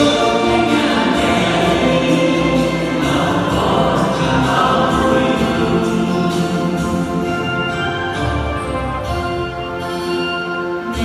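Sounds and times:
choir singing a hymn: 0.0s - 8.0s
instrumental accompaniment: 0.0s - 11.0s.

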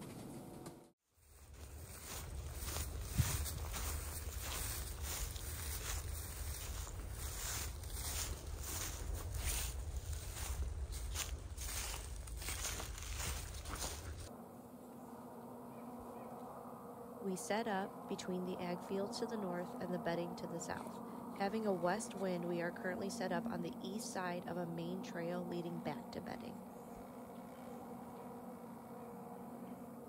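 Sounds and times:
footsteps in dry leaves: 1.1s - 14.3s.

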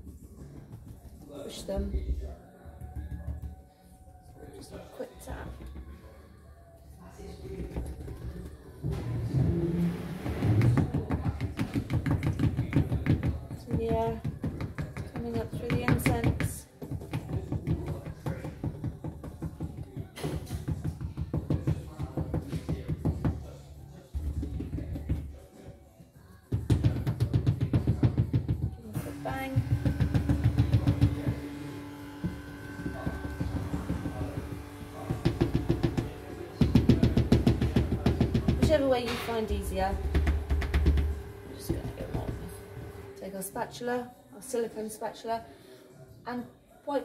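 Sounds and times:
molds knocking on glass tabletop: 10.4s - 23.5s, 26.5s - 43.1s.

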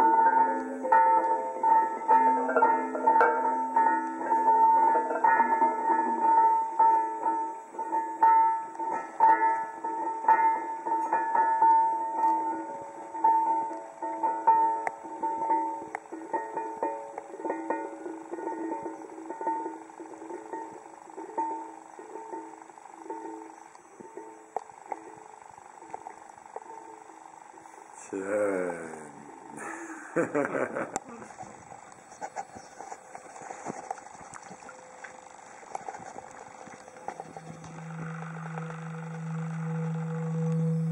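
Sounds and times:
ringing stone tones: 0.0s - 26.0s, 36.4s - 40.9s.

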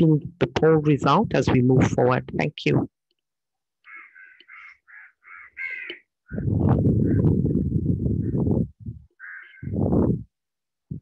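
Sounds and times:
animal harsh calls: 3.8s - 6.4s, 9.2s - 9.8s.

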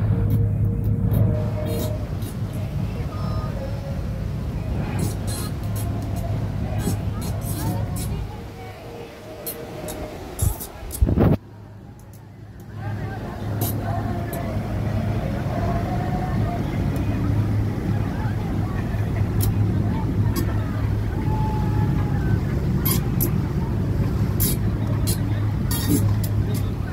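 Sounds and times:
boat engines humming: 0.0s - 26.9s
indistinct voices: 0.0s - 26.9s.

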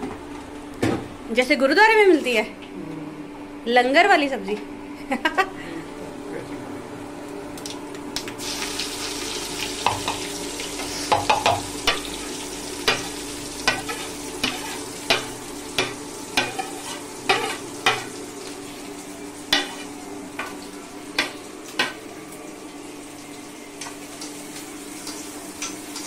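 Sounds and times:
onions sizzling in oil: 8.3s - 26.0s
metal spatula scraping pan: 13.7s - 14.9s.

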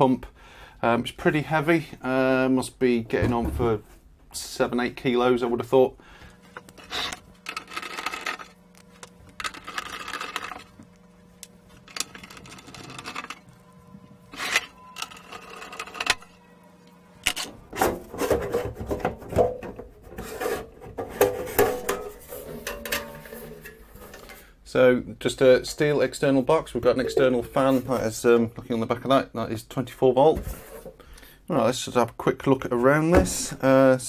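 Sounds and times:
steel enclosure scraping on bench: 6.8s - 8.6s, 14.3s - 16.3s
metallic clatter and rattling: 21.5s - 24.2s.

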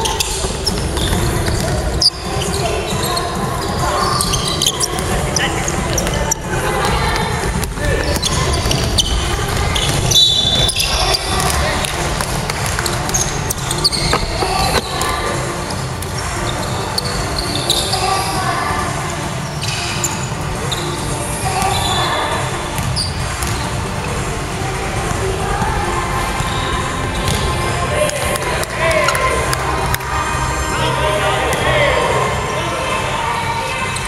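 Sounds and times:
echoing voices: 0.0s - 34.0s.

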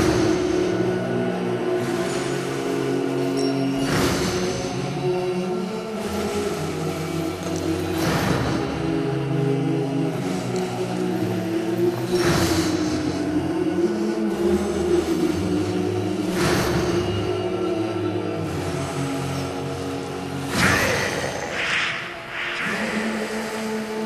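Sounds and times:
dark low sustained chords: 0.0s - 24.0s
swell of noise: 11.2s - 24.0s.

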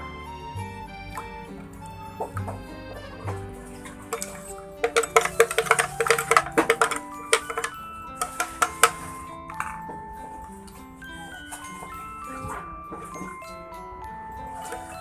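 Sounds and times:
background music: 0.0s - 15.0s
spoon scraping plastic strainer: 3.7s - 9.2s.

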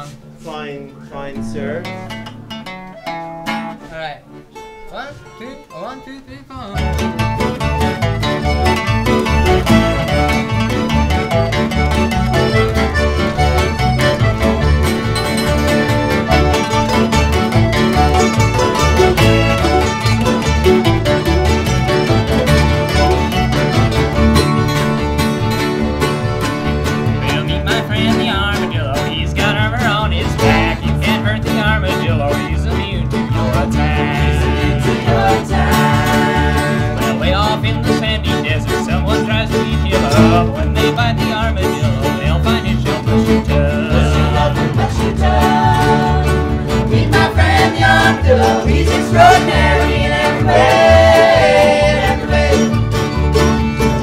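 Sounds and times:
string band playing: 0.0s - 54.0s.

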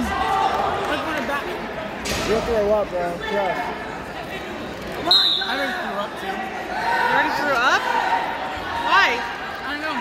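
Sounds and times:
spectators' voices: 0.0s - 10.0s.

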